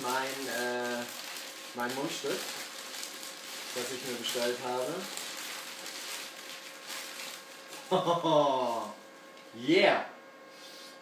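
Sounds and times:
newspaper rustling and crinkling: 0.0 - 8.0.

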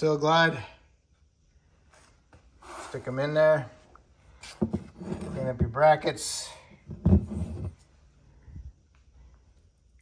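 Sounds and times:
man speaking: 0.0 - 0.8, 2.8 - 3.8, 5.1 - 6.7.

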